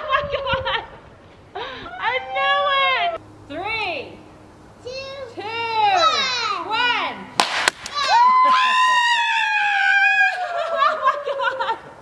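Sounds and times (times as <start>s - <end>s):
children squealing: 7.9s - 11.1s
high excited scream: 7.9s - 11.2s.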